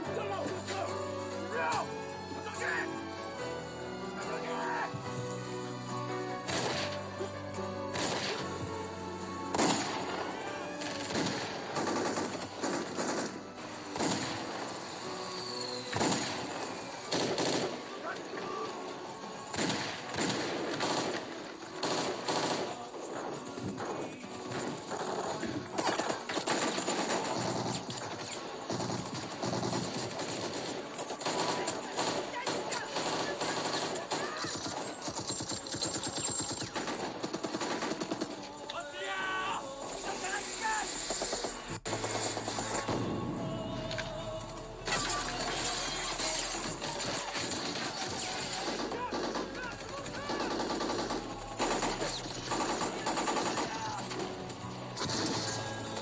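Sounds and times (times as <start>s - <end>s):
dramatic film score: 0.0s - 56.0s
automatic gunfire: 10.8s - 14.7s, 15.9s - 18.0s, 19.5s - 22.9s, 24.8s - 38.6s, 44.9s - 54.3s, 55.0s - 56.0s.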